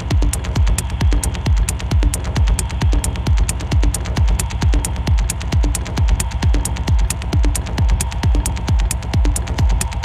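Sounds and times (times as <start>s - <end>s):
deep kick drum: 0.0s - 10.0s.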